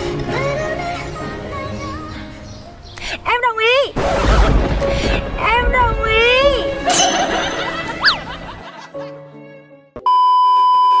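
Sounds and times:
background music: 0.0 - 10.1.

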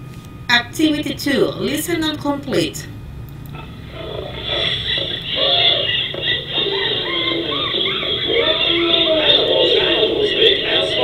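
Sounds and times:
animal-like calls: 3.5 - 11.0
children's song music: 3.6 - 11.0.

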